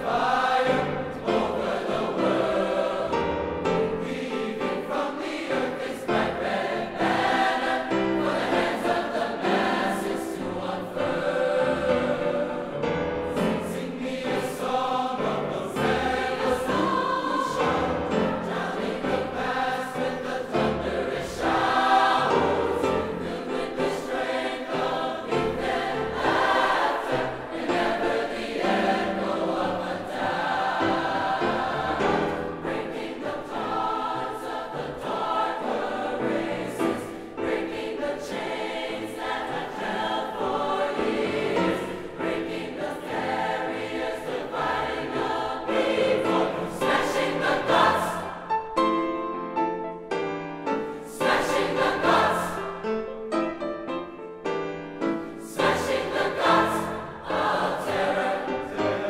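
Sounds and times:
choir singing in harmony: 0.0 - 59.0
piano accompaniment: 0.0 - 59.0.

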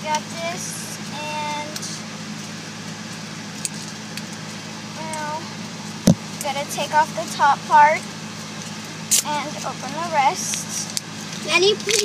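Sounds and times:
car cabin engine hum: 0.0 - 12.0.

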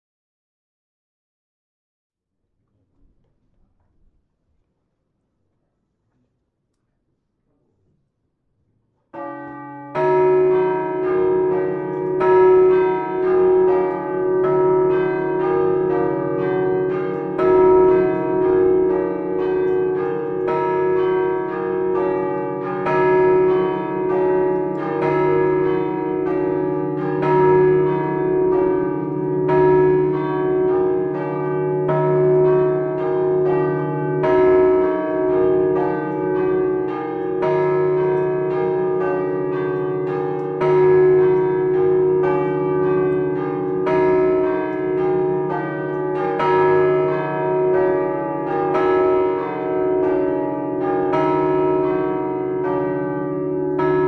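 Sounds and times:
tower bells ringing: 9.1 - 54.0.

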